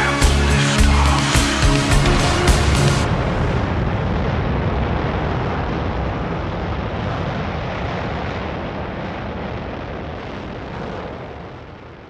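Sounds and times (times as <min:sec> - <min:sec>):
rumbling reverberant noise wash: 0:00.0 - 0:12.0.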